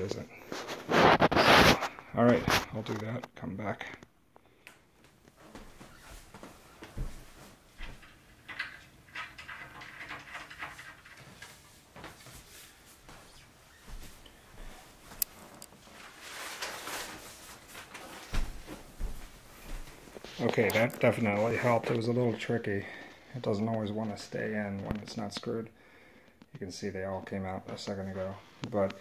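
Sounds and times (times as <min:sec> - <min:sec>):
rustling: 0:00.0 - 0:03.2, 0:05.0 - 0:25.2.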